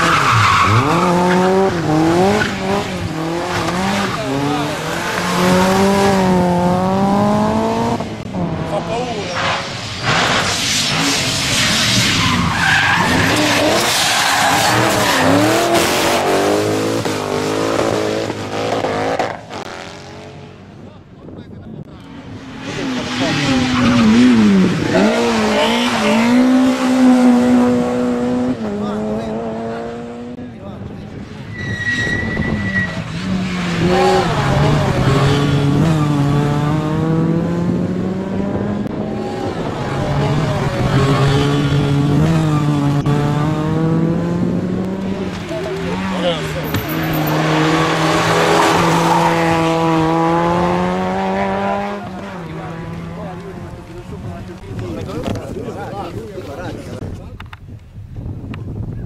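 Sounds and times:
rally car engines revving: 0.0 - 20.9, 21.7 - 57.1
tyre squeal: 31.5 - 33.2.

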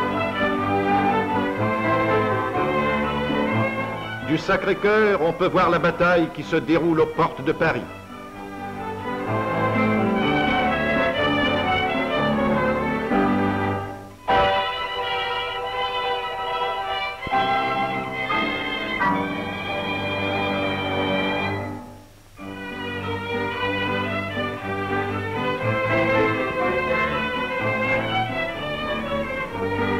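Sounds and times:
orchestral bowed strings: 0.0 - 29.9.

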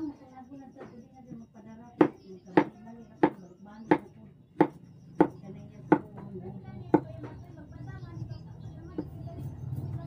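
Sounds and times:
knife chopping on wooden board: 2.0 - 6.1.

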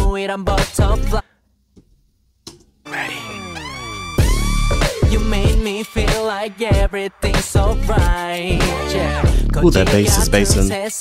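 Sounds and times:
synth sweep sliding in pitch: 2.9 - 5.4.

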